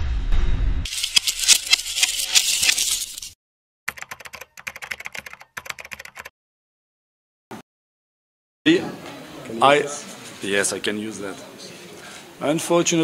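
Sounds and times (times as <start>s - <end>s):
rapid keyboard typing clicks: 3.9s - 6.3s.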